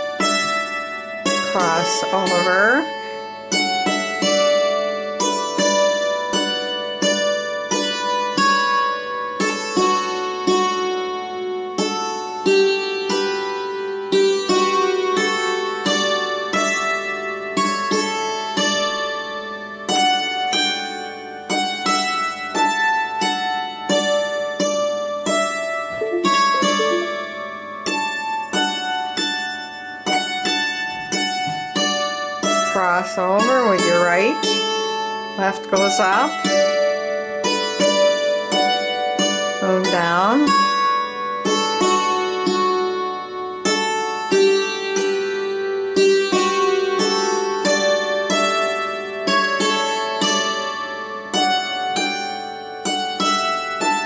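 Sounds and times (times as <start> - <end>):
hammered dulcimer waltz: 0.0 - 27.4, 30.1 - 54.0.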